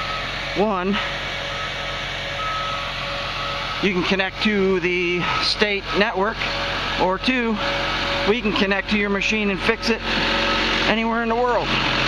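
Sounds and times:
back-up alarm beeping: 0.0s - 0.4s, 1.0s - 6.6s, 9.7s - 10.8s
bulldozer engine running: 0.0s - 12.0s.

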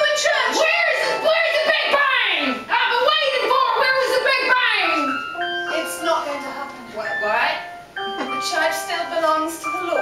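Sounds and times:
instrumental accompaniment: 0.0s - 10.0s.

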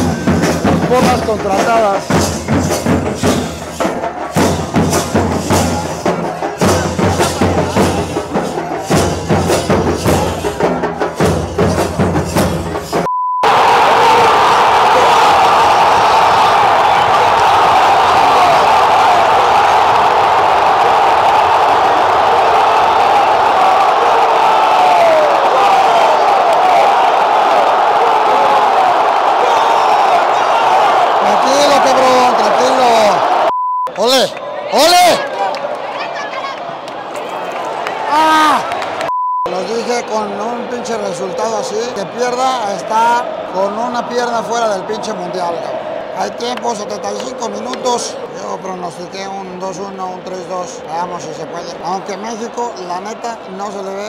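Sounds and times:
drums beating in quick rhythm: 0.0s - 13.1s
stadium crowd singing and cheering: 0.0s - 54.0s
short beep: 13.1s - 13.5s, 33.5s - 34.0s, 39.1s - 39.5s.

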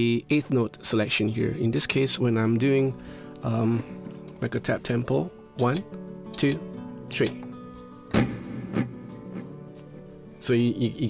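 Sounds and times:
electric guitar note with delay: 8.2s - 9.7s.

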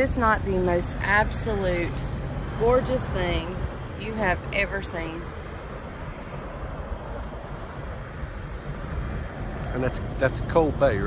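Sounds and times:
wind blowing across microphone: 0.0s - 11.0s.

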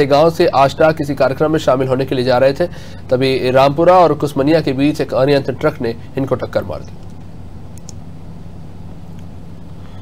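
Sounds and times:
faint background noise: 0.0s - 10.0s
steady low hum: 0.0s - 10.0s.

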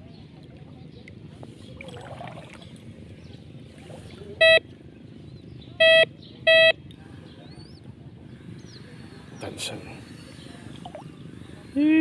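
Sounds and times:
metal detector beeps: 4.4s - 4.6s, 5.8s - 6.8s.

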